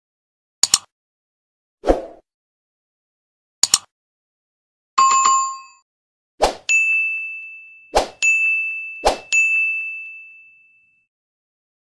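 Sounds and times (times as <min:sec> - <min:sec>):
notification bell ding: 0:05.0 - 0:05.8, 0:06.7 - 0:11.1
short chime: 0:06.7 - 0:11.1.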